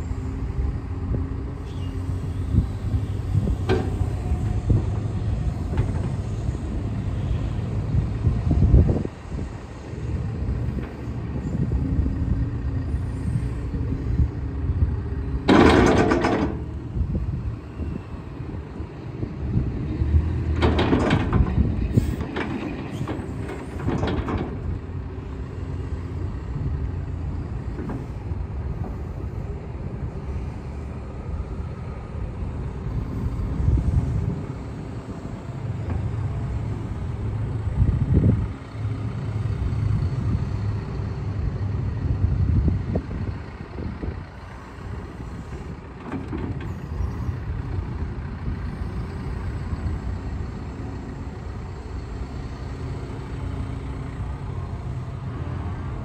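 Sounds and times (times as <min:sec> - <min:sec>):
hydraulics working: 0:00.0 - 0:40.5
excavator diesel engine running: 0:00.0 - 0:56.0.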